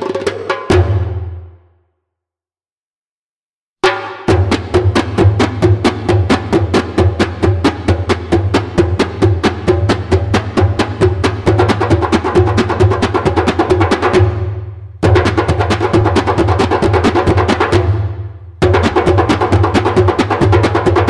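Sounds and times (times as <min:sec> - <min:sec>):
goblet drums playing fast rhythm: 0:00.0 - 0:01.4, 0:03.8 - 0:21.0.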